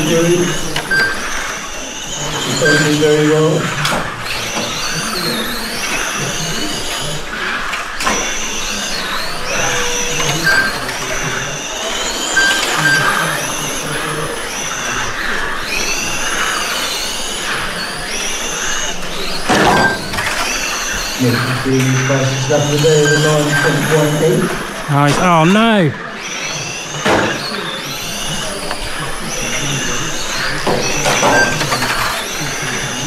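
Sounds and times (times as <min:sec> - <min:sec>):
electric toy car motors whining: 0:00.0 - 0:33.0.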